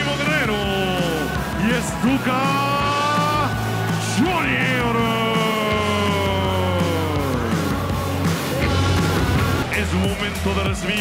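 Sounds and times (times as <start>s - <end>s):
entrance music with steady beat: 0.0s - 11.0s.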